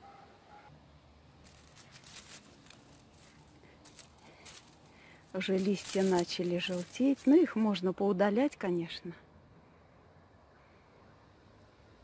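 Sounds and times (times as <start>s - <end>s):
rustling of plant foliage: 1.3s - 8.8s.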